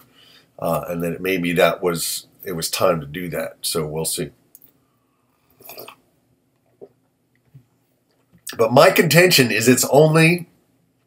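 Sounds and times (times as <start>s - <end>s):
man slurping from mug: 5.6s - 6.0s.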